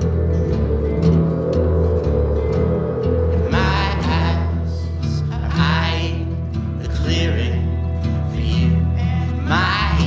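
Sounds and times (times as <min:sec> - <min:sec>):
instrumental music with low bass: 0:00.0 - 0:10.0.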